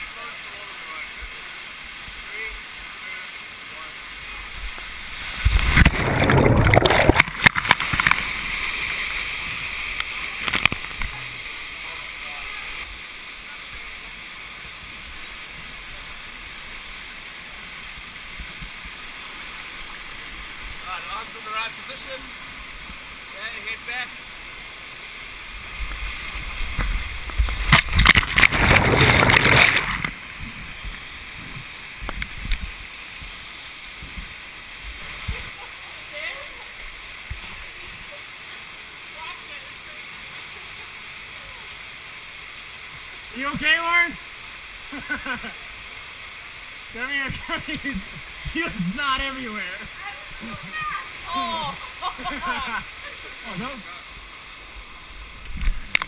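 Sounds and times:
rushing water: 0.0 - 56.0
churning surge of water: 4.2 - 13.0, 24.0 - 32.9.

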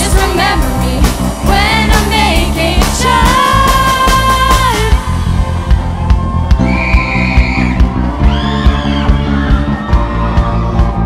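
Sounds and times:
live band playing: 0.0 - 11.0
steady drum beat: 0.0 - 11.0.

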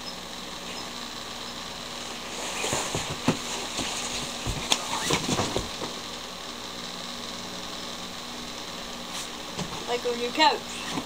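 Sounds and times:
steady background hum: 0.0 - 11.0
person moving on a couch: 1.9 - 6.1, 9.0 - 9.9.

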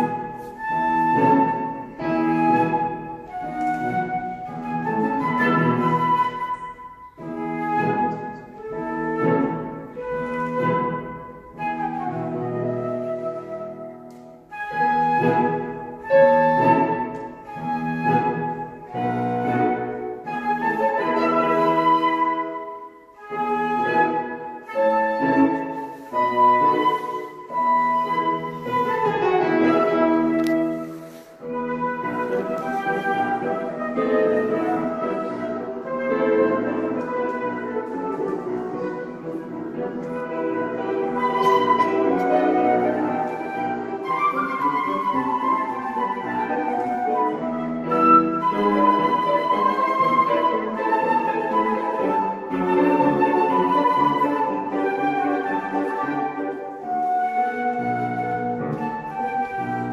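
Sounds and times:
flute melody: 0.0 - 59.9
piano accompaniment: 0.0 - 59.9.

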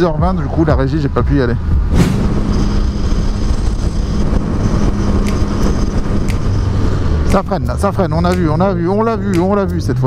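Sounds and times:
motorcycle engine cruising: 1.8 - 8.1.

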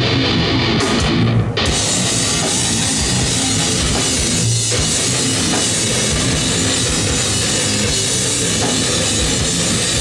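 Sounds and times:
fast dense drumming: 0.0 - 10.0
heavy distorted guitars: 0.0 - 10.0.

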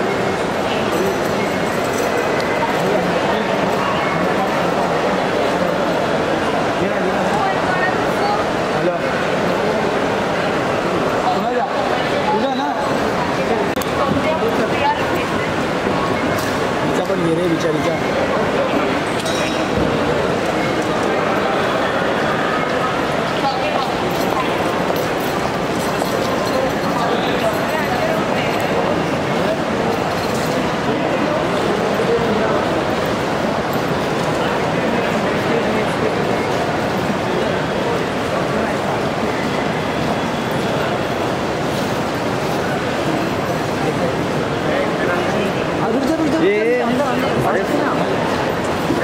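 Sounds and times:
crowd hubbub: 0.0 - 49.0.

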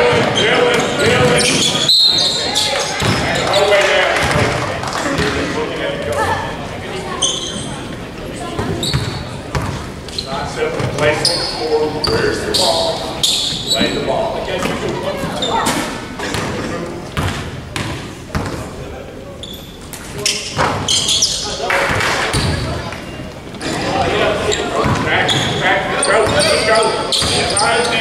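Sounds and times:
sneaker squeaks: 0.0 - 3.8, 7.1 - 7.9, 8.6 - 16.5, 19.4 - 23.3, 24.4 - 28.0.

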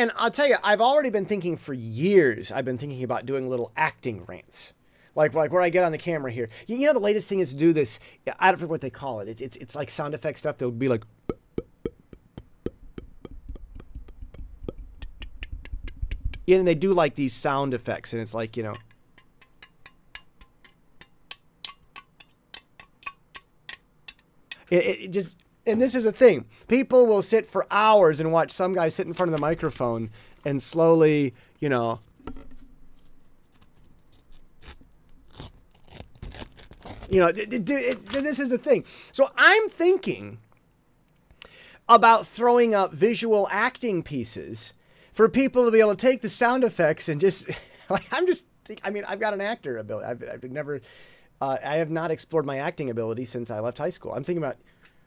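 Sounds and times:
tongue clicks close to microphone: 13.0 - 16.5.

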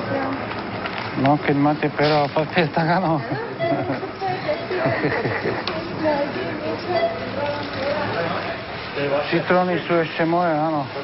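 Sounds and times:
people talking: 1.2 - 11.0.

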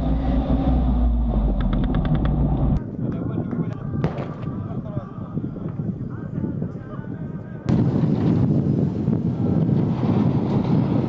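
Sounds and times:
vehicle engine low rumble: 0.0 - 2.9.

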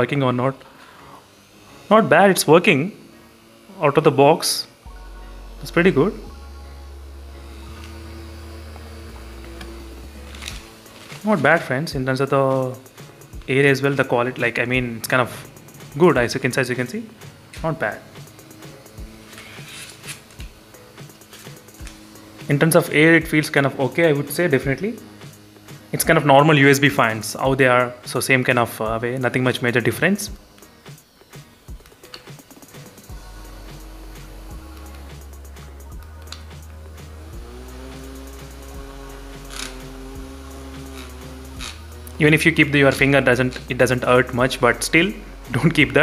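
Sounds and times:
handheld fan running: 0.0 - 46.0
soft background music: 0.0 - 46.0.

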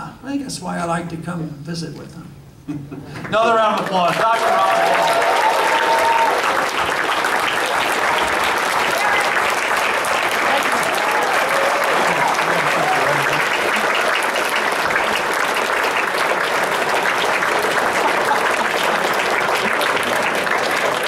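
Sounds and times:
audience applauding: 3.2 - 21.0.

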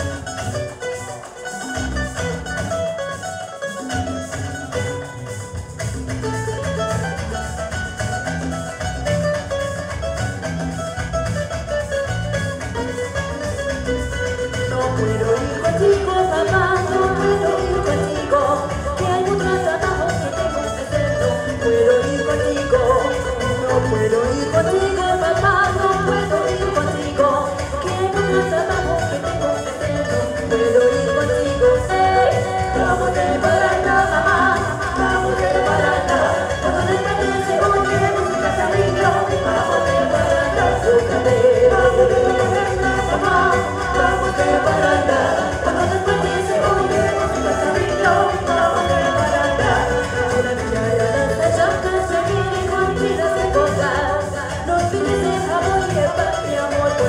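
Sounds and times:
bass guitar: 0.0 - 57.0
latin band playing: 0.0 - 57.0
strummed guitar: 0.0 - 57.0
women singing: 14.3 - 57.0.

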